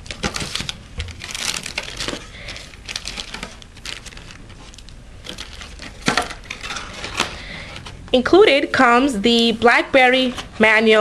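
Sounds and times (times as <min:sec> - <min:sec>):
packaging crinkling: 0:00.0 - 0:08.2.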